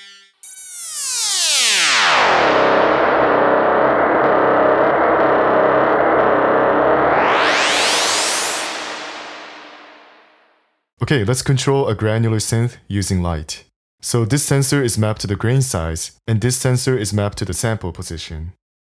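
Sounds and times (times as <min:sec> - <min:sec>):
sweeping synthesizer tone: 0:00.0 - 0:10.4.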